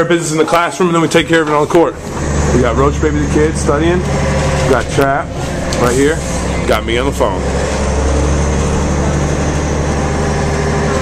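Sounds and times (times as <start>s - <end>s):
bus engine drone: 0.0s - 11.0s
road noise: 0.0s - 11.0s.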